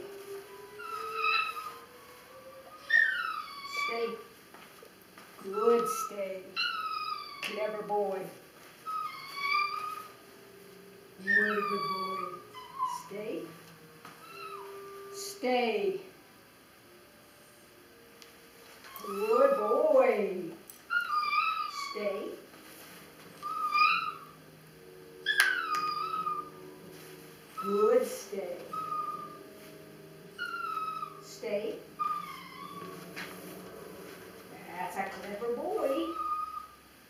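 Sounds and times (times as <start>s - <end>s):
dog whining: 0.0s - 4.3s, 5.4s - 8.0s, 8.8s - 10.3s, 11.2s - 15.2s, 18.8s - 20.3s, 20.9s - 22.3s, 23.3s - 37.0s.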